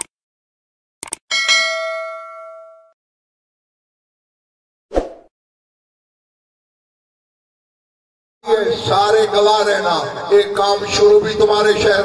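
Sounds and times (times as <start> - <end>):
bright bell ding: 1.3 - 3.0.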